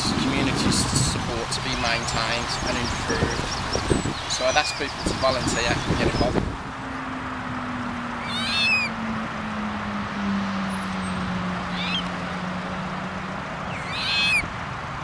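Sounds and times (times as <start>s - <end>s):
waterbird calls: 1.7s - 6.3s, 8.2s - 9.0s, 11.7s - 12.2s, 13.7s - 14.5s.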